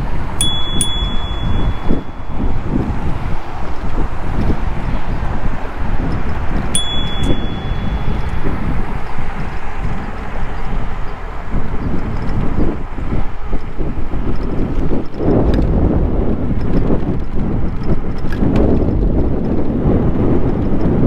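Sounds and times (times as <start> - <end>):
wind rumble on microphone: 0.0 - 21.0
bicycle bell ringing: 0.4 - 3.5, 6.7 - 9.2.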